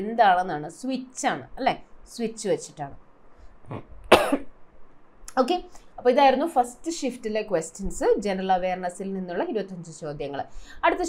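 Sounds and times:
throat clearing sound: 3.7s - 4.5s
woman coughing: 4.1s - 4.5s.

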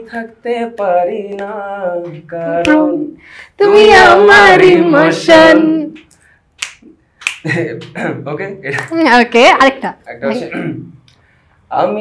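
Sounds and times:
finger snaps: 6.0s - 7.5s.

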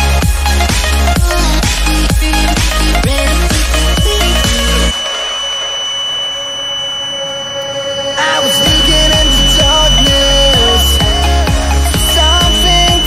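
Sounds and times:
electronic music: 0.0s - 13.0s
high-pitched buzzer beep: 2.6s - 13.0s.

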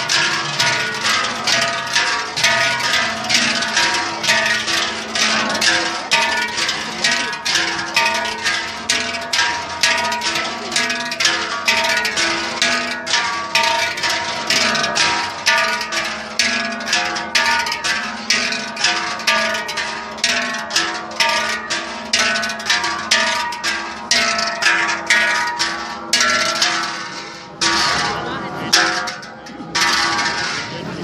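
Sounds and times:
large cowbells clanging: 0.0s - 31.0s.

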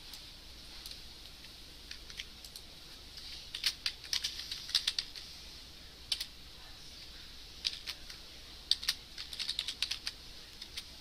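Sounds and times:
keyboard typing: 3.5s - 5.2s, 7.6s - 8.1s, 8.7s - 10.9s.

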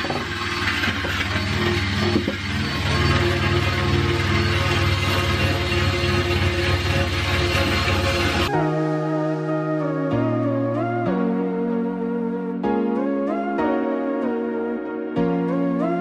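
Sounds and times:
drill motor hum: 0.0s - 8.5s
wire brush scratching metal: 0.0s - 8.5s.

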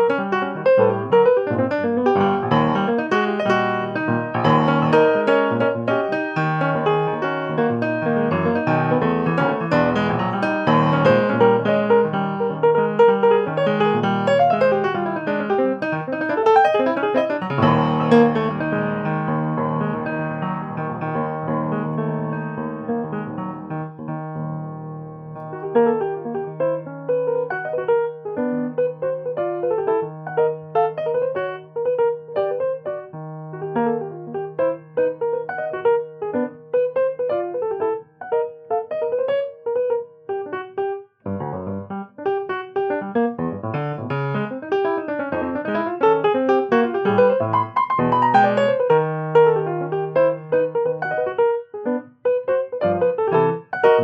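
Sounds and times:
solo jazz piano: 0.0s - 54.0s.

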